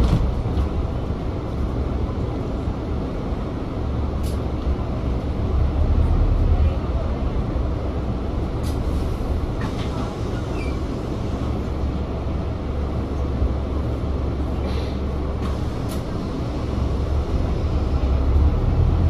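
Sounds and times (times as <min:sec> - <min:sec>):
bus engine rumble: 0:00.0 - 0:19.0.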